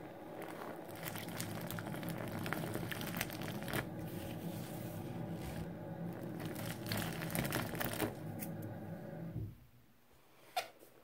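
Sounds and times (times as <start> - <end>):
foamy liquid bubbling and crackling: 0.0 - 9.3.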